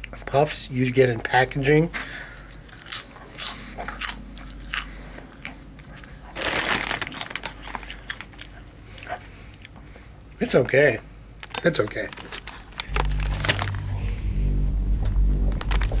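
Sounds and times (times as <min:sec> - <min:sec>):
chips being crunched: 0:06.4 - 0:08.5, 0:11.4 - 0:13.9.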